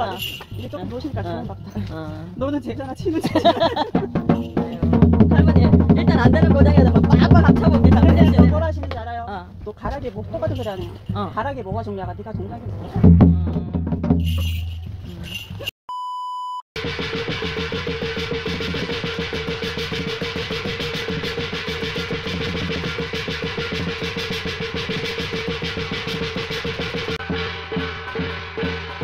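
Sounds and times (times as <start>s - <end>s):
electronic beep: 15.9s - 16.6s
small gong beaten fast: 16.8s - 29.0s.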